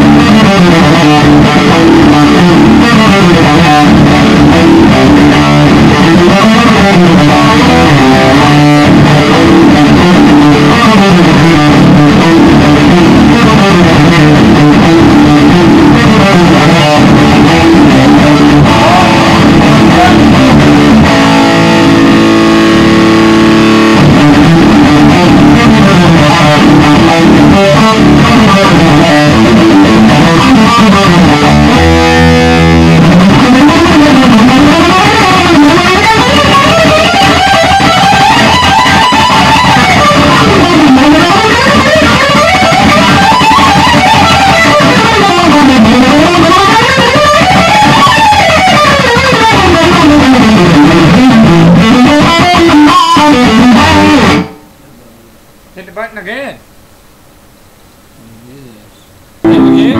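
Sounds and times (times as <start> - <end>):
distorted electric guitar solo: 0.0 - 56.6, 58.2 - 59.9.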